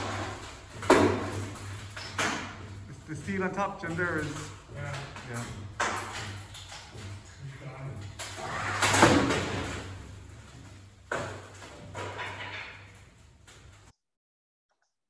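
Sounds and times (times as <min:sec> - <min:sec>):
hydraulic rig humming: 0:00.0 - 0:12.4.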